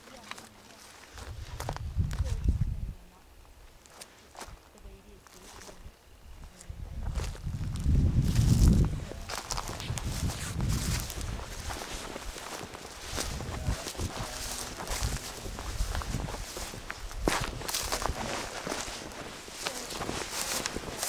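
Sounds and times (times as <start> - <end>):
footsteps through dry grass: 0.0 - 21.0
low rumble on microphone: 1.3 - 3.2, 6.7 - 11.8.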